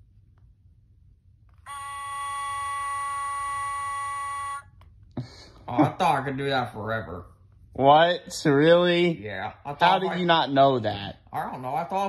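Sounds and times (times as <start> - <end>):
toy electronic voice singing note: 1.7 - 4.7.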